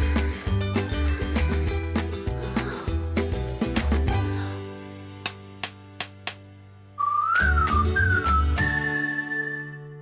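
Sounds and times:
bass-heavy music jingle: 0:00.0 - 0:05.6
whistled tune: 0:07.0 - 0:10.0.

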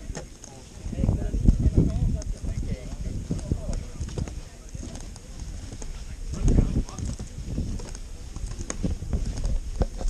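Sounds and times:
footsteps on wooden deck: 0:01.6 - 0:10.0.

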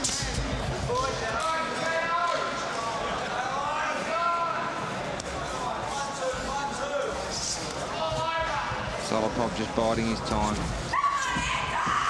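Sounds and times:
crowd noise: 0:00.0 - 0:12.0
people shouting: 0:10.9 - 0:12.0.

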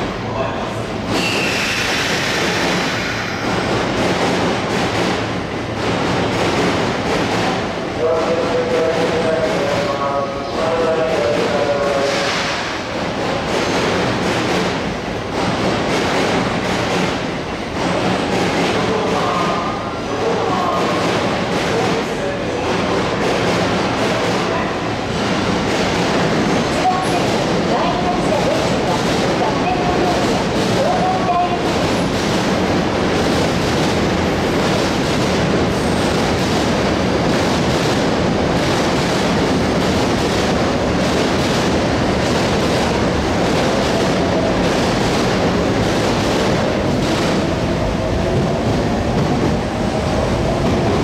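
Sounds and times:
station background noise: 0:00.0 - 0:51.0
train wheels on rails: 0:00.0 - 0:51.0.

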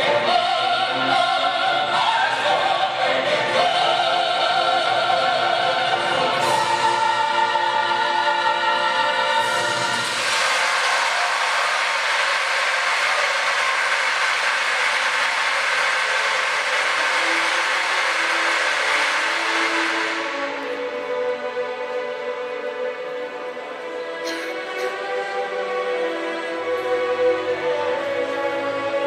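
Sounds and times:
choral opera music: 0:00.0 - 0:29.0
dense steady rushing noise: 0:09.5 - 0:22.1
soft music: 0:17.5 - 0:29.0.

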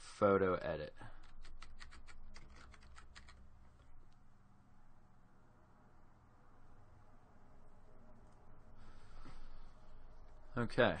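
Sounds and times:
typing on computer keyboard: 0:01.2 - 0:03.9.

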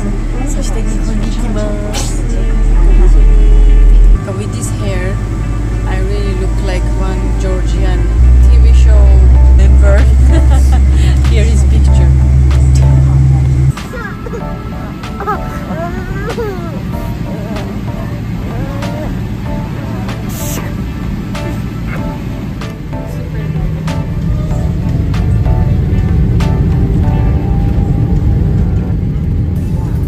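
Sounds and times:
person speaking: 0:00.0 - 0:04.9
background music with deep bass: 0:00.0 - 0:30.0.

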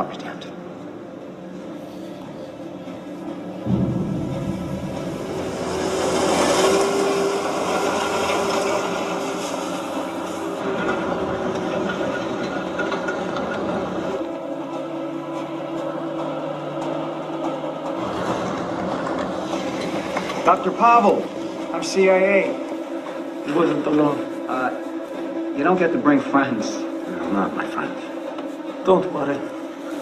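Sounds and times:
orchestral drone notes: 0:00.0 - 0:30.0
rumbling vehicle noise: 0:02.6 - 0:24.2
clatter: 0:03.6 - 0:14.3, 0:16.2 - 0:21.6.

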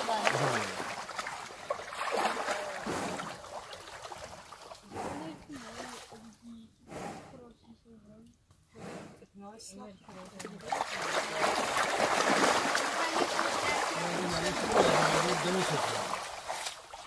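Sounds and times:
rhinos splashing in mud: 0:00.0 - 0:06.4, 0:10.0 - 0:17.0.

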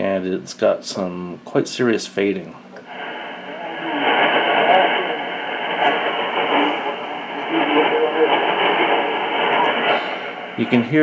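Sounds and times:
steady radio hiss: 0:00.0 - 0:11.0
faint radio voice: 0:03.4 - 0:11.0.

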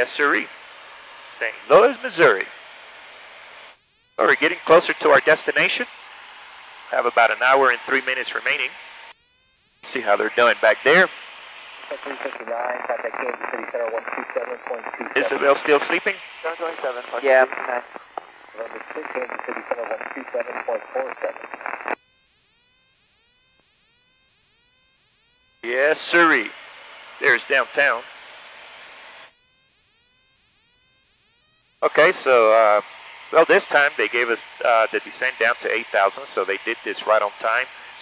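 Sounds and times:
voice through headset radio: 0:01.3 - 0:02.5, 0:04.2 - 0:05.9, 0:06.9 - 0:08.7, 0:09.9 - 0:11.1, 0:11.9 - 0:21.9, 0:25.6 - 0:26.5, 0:27.2 - 0:28.1, 0:31.8 - 0:32.8, 0:33.4 - 0:38.0
low hiss: 0:09.8 - 0:22.0, 0:31.8 - 0:38.0.

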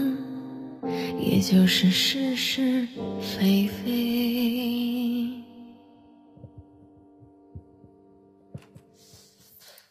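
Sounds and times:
microphone handling thumps: 0:06.3 - 0:09.0.

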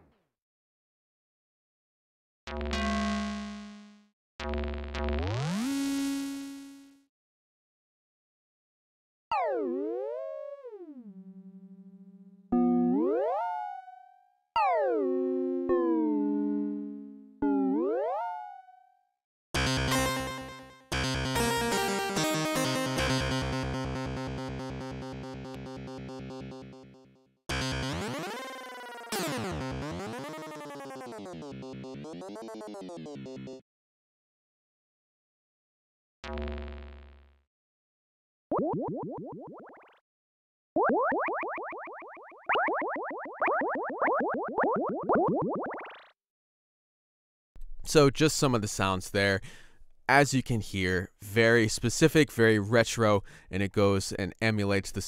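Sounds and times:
synthesizer effects tones: 0:12.5 - 0:13.8, 0:14.6 - 0:18.6, 0:19.6 - 0:33.6.

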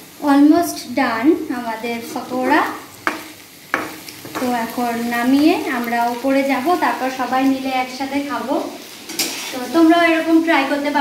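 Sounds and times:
faint sizzle: 0:00.0 - 0:11.0
spatula knocking against pan: 0:02.4 - 0:04.6
metal spatula stirring in wok: 0:08.8 - 0:09.8.

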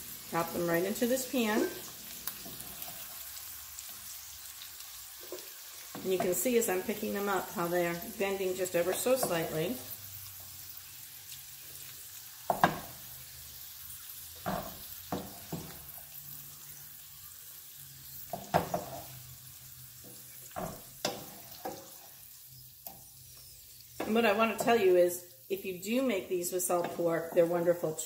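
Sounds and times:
beans sizzling in a frying pan: 0:00.0 - 0:28.0.

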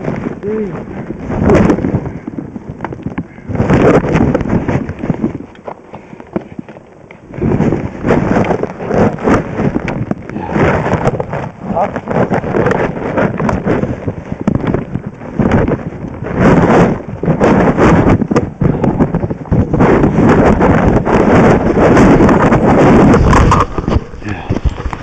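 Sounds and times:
wind buffeting microphone: 0:00.0 - 0:25.0
skis and poles on snow: 0:02.9 - 0:25.0.

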